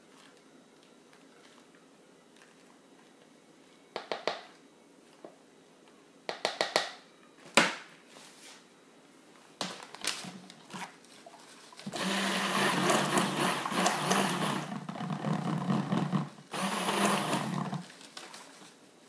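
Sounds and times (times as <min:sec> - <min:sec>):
stick blender running: 0:11.8 - 0:17.9.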